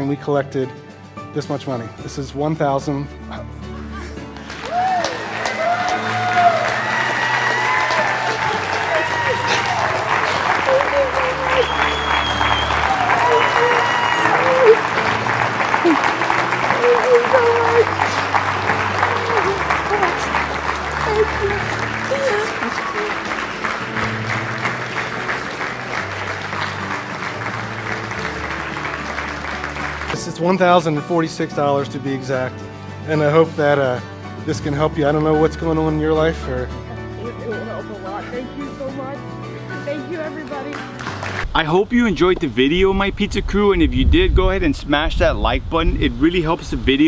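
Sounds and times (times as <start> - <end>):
people applauding: 4.2 - 31.0, 39.7 - 42.8
shouts and whoops: 4.5 - 23.3.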